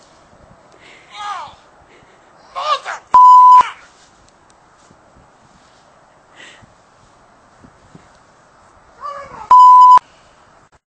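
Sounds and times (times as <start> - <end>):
censor bleep tone: 3.2 - 3.6, 9.5 - 10.0.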